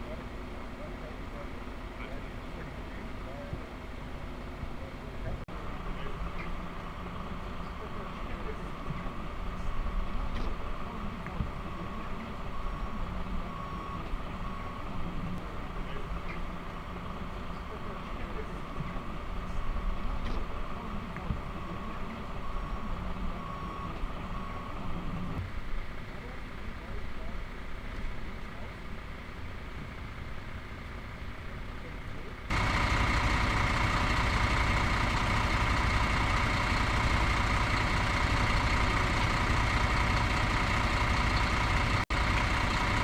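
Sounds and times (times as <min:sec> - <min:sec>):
distant voices: 0:00.0 - 0:43.0
heavy vehicle engine idling: 0:00.0 - 0:43.0
faint short beeps: 0:11.5 - 0:15.4, 0:21.2 - 0:25.4.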